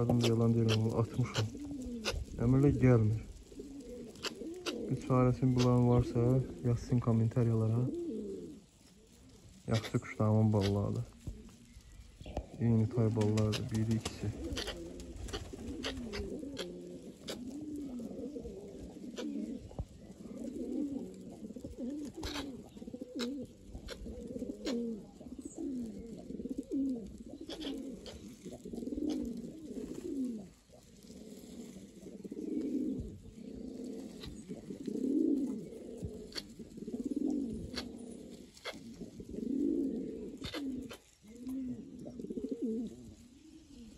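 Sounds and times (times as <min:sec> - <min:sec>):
pigeons cooing: 0:00.0 - 0:43.9.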